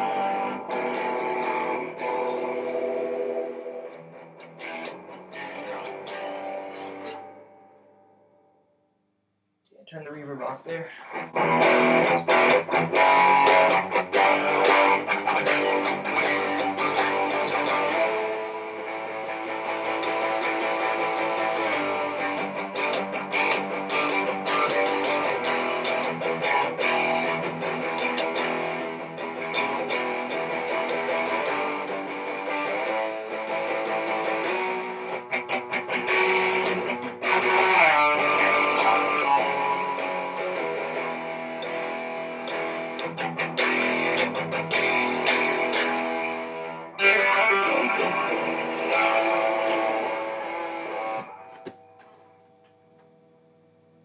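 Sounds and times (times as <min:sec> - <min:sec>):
distorted electric guitar: 0:00.0 - 0:08.3, 0:10.9 - 0:54.0.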